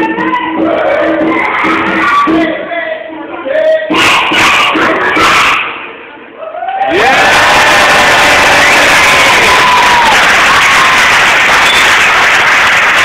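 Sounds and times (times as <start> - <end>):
cheers and whoops: 6.4 - 13.0
audience applauding: 6.9 - 13.0.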